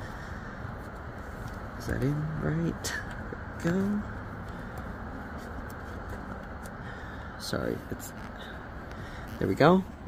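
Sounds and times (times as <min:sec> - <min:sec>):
low background noise: 0:00.0 - 0:10.0.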